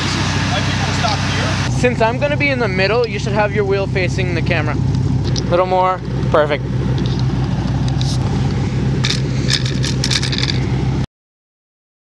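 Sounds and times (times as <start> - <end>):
car engine idling: 0.0 - 11.1.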